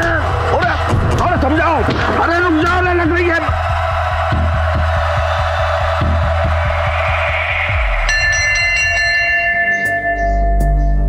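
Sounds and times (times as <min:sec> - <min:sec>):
pulsing low beat: 0:03.4 - 0:11.0
sustained high ringing tones: 0:07.8 - 0:11.0.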